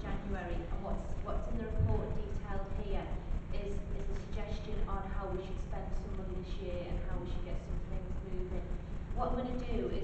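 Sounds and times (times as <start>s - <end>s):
woman talking into microphone: 0.0s - 10.0s.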